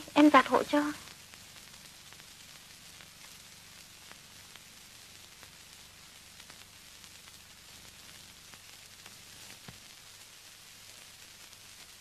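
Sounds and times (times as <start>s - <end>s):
faint film soundtrack hiss: 0.0s - 12.0s
light crackles: 0.0s - 12.0s.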